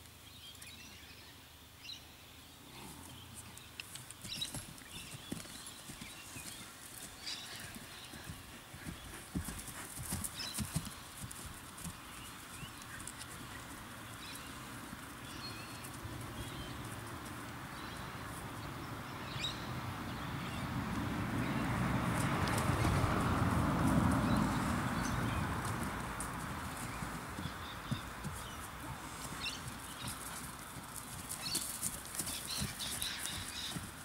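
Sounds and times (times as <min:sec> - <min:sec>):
horse hoofbeats on grass: 0:03.9 - 0:18.7, 0:21.5 - 0:34.0.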